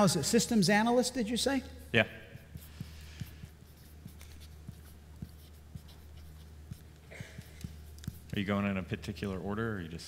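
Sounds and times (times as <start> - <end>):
low room hum: 0.0 - 10.0
marker writing on a board: 2.3 - 8.9.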